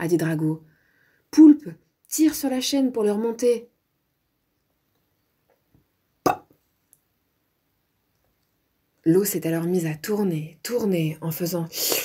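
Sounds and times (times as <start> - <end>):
short sharp pop: 6.3 - 6.5.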